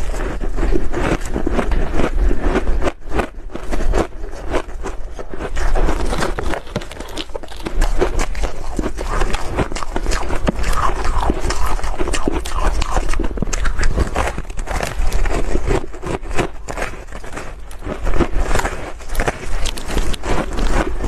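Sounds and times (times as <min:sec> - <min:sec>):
crushed ice being chewed: 0:00.0 - 0:21.0.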